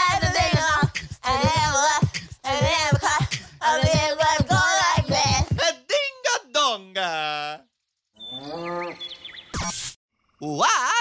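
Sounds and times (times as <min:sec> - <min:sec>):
low drawn-out moo: 0:08.3 - 0:09.0.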